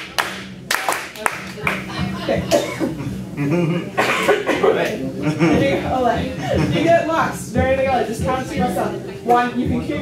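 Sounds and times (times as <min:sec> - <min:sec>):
group of people talking: 0:00.7 - 0:10.0
cough: 0:02.5 - 0:03.1, 0:03.7 - 0:04.8.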